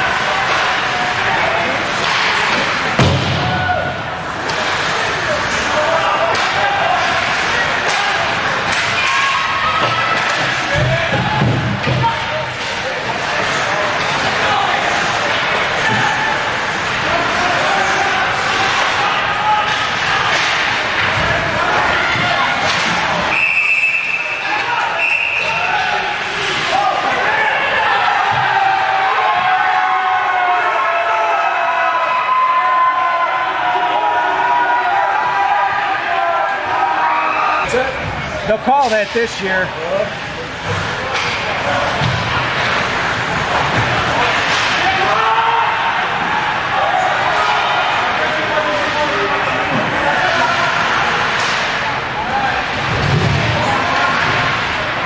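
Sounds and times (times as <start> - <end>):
crowd voices and shouts: 0.0 - 55.0
sticks and puck hitting boards: 19.6 - 21.4
referee's whistle blast: 23.3 - 25.7.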